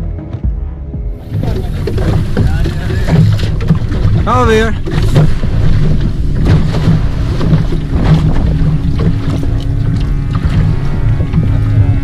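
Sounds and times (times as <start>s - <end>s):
steady hum: 0.0s - 12.0s
wind and waves on a hull: 0.0s - 12.0s.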